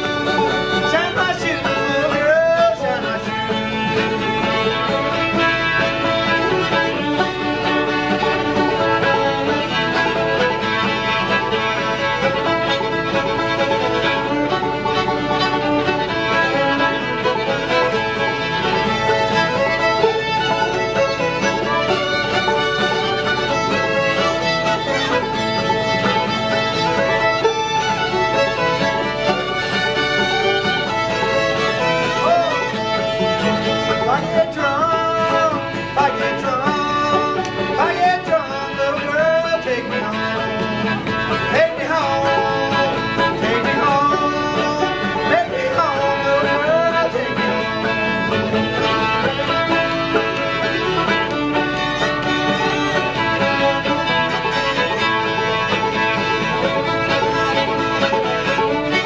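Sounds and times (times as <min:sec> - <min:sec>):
banjo and guitar accompaniment: 0:00.0 - 0:59.0
fiddles playing a tune: 0:00.0 - 0:59.0
string band playing: 0:00.0 - 0:59.0.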